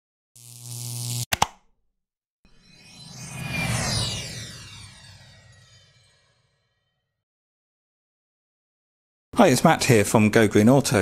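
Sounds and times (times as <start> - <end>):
sharp clicks: 1.2 - 1.6.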